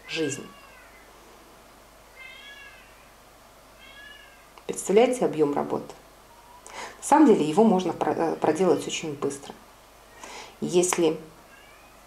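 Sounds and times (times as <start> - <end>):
cat mewing: 0.0 - 1.1, 2.1 - 3.2, 3.8 - 4.6, 11.5 - 12.0.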